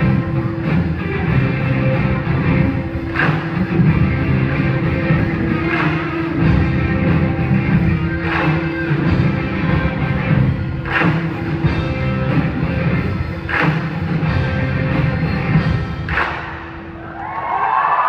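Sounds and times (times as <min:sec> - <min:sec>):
drum kit: 0:00.0 - 0:16.8
electric guitars: 0:00.0 - 0:17.0.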